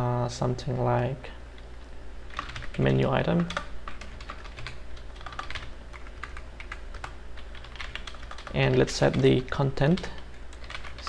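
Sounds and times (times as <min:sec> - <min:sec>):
steady low hum: 0:00.0 - 0:11.0
typing on computer keyboard: 0:02.3 - 0:09.2, 0:09.9 - 0:11.0.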